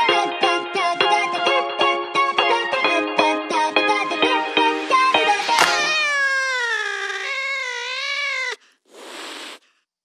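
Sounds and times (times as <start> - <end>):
hissing noise: 5.2 - 9.6
cat meowing: 5.5 - 8.6.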